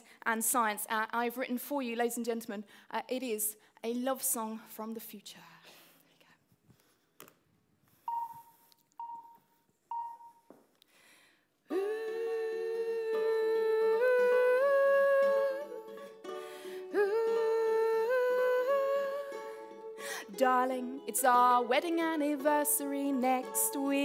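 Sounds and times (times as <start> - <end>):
woman humming a slow melody: 11.7 - 16.0
soft ukulele: 11.7 - 24.0.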